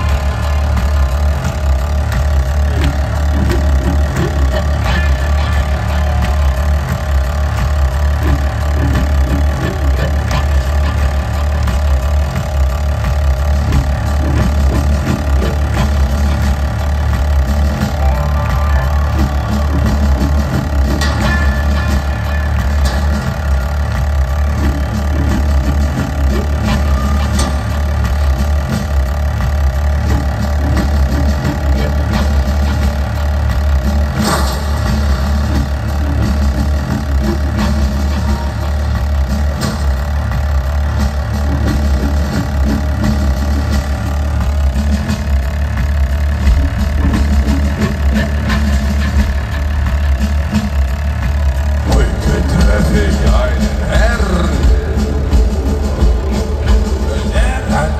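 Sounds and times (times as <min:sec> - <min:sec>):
live rock band playing loudly: 0:17.1 - 0:23.7, 0:51.8 - 0:57.9.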